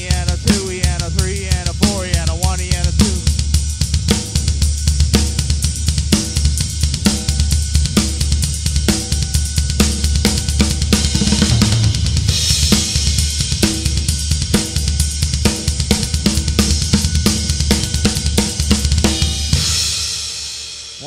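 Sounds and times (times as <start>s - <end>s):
drum kit shuffle groove: 0.0s - 21.0s.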